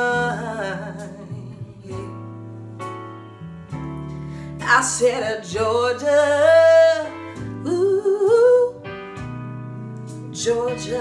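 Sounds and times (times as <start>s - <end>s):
woman singing: 0.0s - 2.4s, 4.6s - 11.0s
acoustic guitar: 0.0s - 11.0s.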